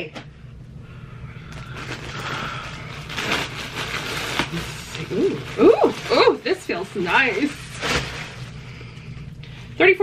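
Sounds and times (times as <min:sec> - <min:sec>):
plastic garment bag crinkling: 0:01.5 - 0:09.0.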